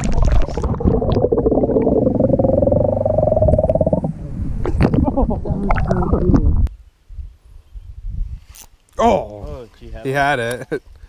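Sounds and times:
low rumbling on microphone: 0.0 - 8.4.

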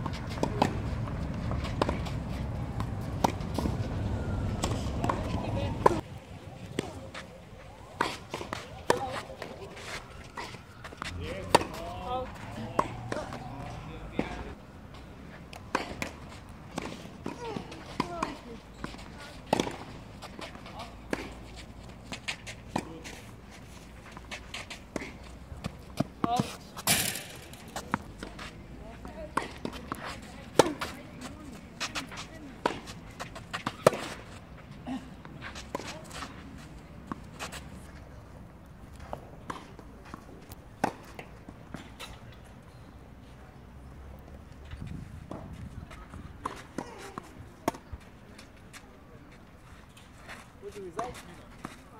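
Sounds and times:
tennis balls struck by rackets: 0.0 - 7.3, 7.9 - 38.0, 39.0 - 42.5, 45.2 - 48.8
tennis balls bouncing on clay: 0.0 - 49.0
faint voices talking: 4.2 - 16.2.

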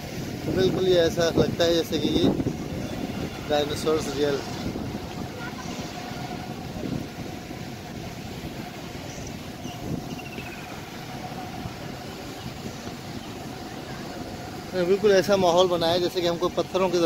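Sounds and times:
faint voices of people: 4.4 - 6.9.

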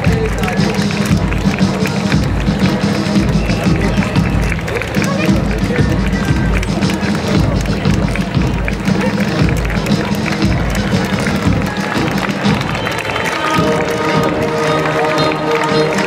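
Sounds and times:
children marching footsteps: 0.0 - 16.0
crowd voices: 0.0 - 16.0
march music with drum beat: 0.0 - 16.0.

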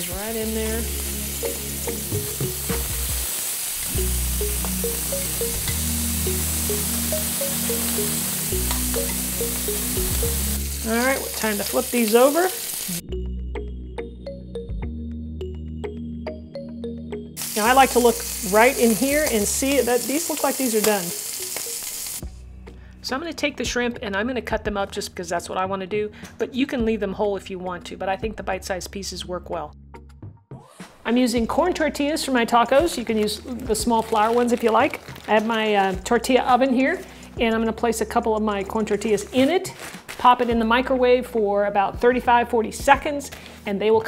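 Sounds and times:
shrimp sizzling in a pan: 0.0 - 13.0, 17.4 - 22.3
background music: 0.0 - 44.0.

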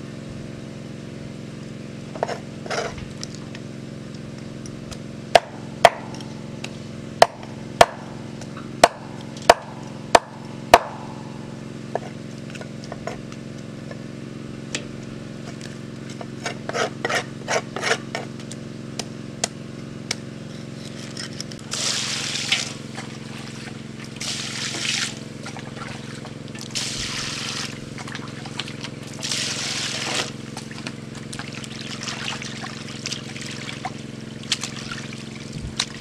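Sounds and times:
water pouring into a bowl: 21.7 - 22.8.

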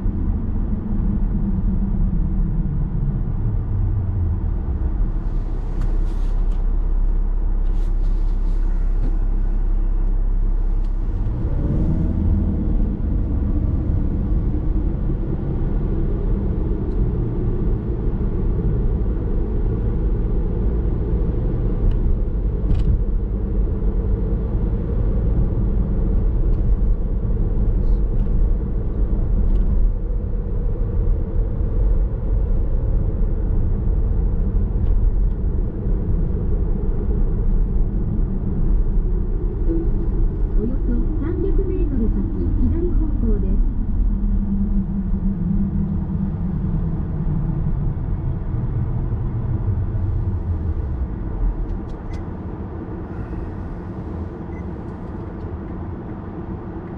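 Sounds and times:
road and tyre noise: 0.0 - 56.9
car idling: 4.6 - 21.0.

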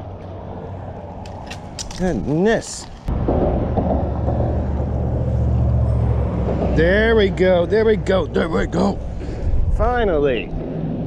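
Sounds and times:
low engine rumble: 2.8 - 11.0.

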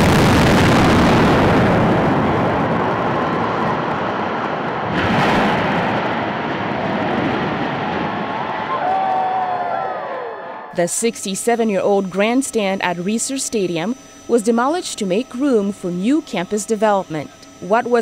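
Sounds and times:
demolition blasts: 0.0 - 9.2
rumbling roar of collapsing structure: 0.0 - 10.6.

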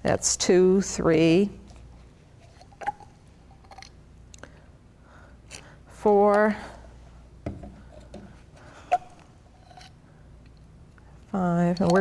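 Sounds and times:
handling plastic labware: 1.7 - 4.0.

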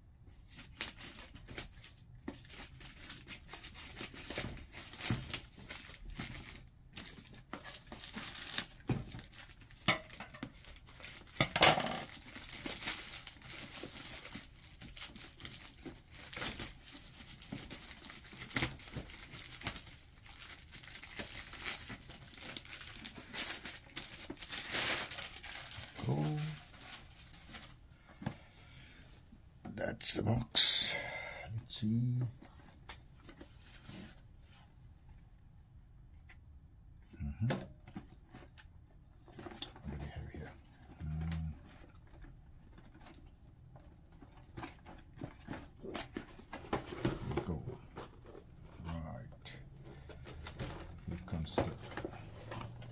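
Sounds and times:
plastic bag crinkling: 7.9 - 27.6.

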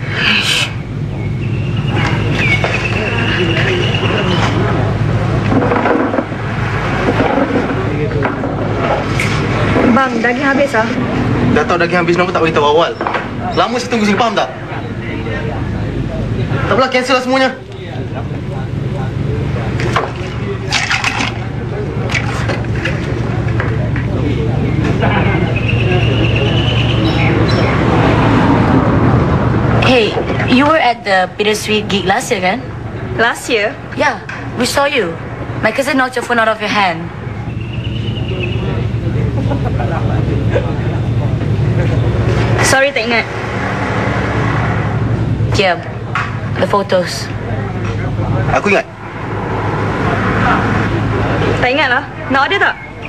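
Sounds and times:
faint background voices: 0.0 - 53.0
road traffic rumble: 0.0 - 53.0
steady low hum: 0.0 - 53.0
vehicle passing: 0.0 - 53.0.

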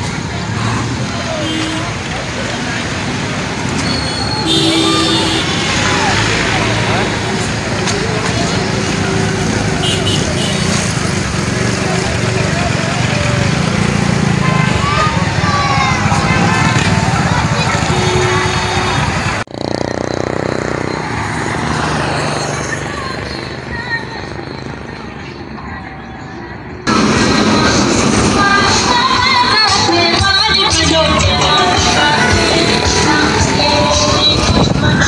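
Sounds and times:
trucks and cars passing: 0.0 - 35.0
horn blasts: 4.2 - 6.1, 17.7 - 19.4.

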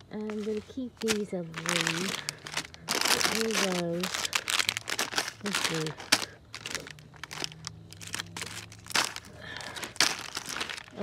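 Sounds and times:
plastic wrappers crinkling: 0.0 - 11.0.

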